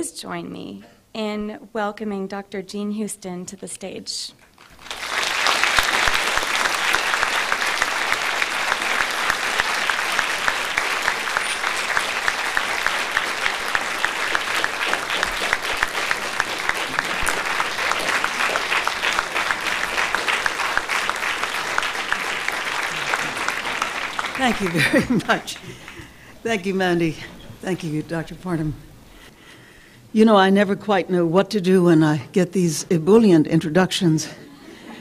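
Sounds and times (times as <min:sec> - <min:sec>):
audience applauding: 0:04.6 - 0:28.6.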